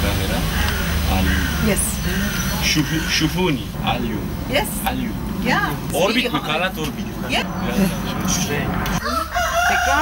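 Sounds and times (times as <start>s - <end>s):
rooster crowing: 9.0s - 10.0s.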